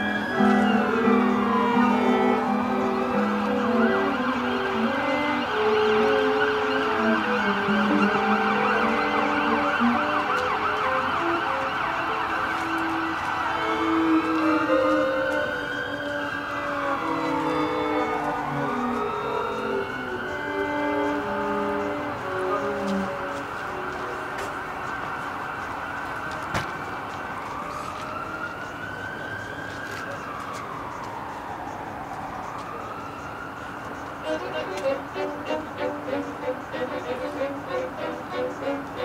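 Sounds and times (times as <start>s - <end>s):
instrumental ensemble holding notes: 0.0s - 24.7s, 34.2s - 39.0s
emergency vehicle siren: 0.0s - 39.0s.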